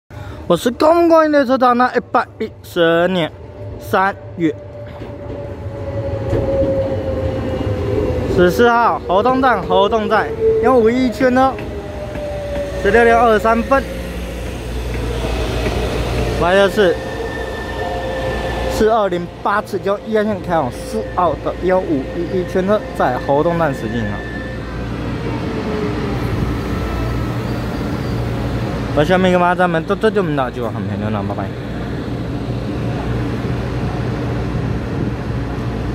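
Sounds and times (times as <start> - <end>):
train wheels rumbling on rail: 0.6 - 35.9
train whining tone: 2.5 - 35.9.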